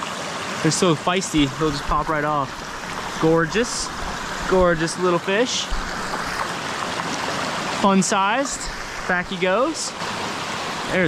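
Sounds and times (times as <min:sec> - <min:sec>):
brook running over stones: 0:00.0 - 0:11.0.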